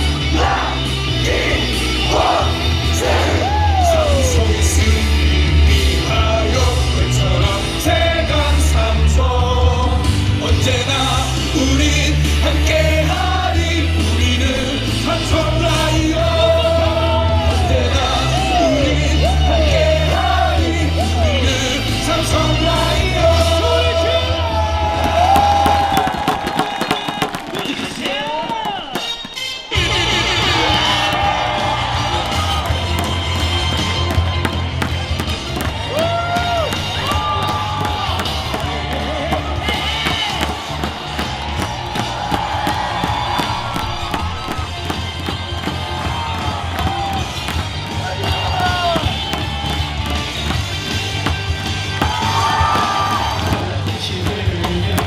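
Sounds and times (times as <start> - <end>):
crowd chanting: 0.0 - 9.6, 10.7 - 26.3
cheer music with bass beat: 0.0 - 55.0
crowd cheering: 0.0 - 55.0.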